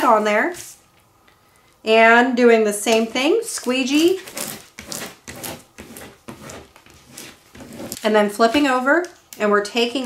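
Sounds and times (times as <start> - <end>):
squeegee scraping over tape: 3.6 - 8.1.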